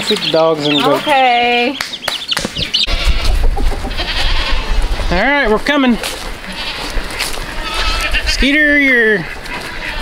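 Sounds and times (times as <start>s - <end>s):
wind rumble on microphone: 2.4s - 9.9s
goats bleating: 2.8s - 10.0s.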